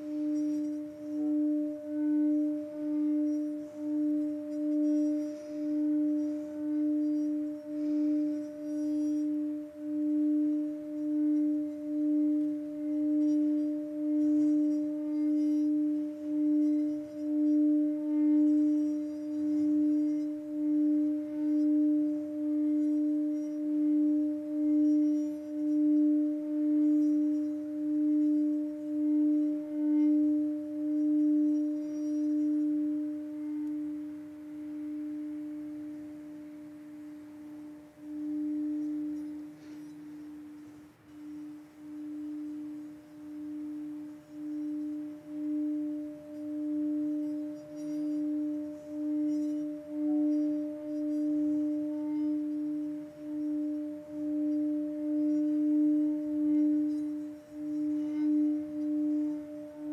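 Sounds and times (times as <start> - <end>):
singing bowl tone: 0.0 - 59.9.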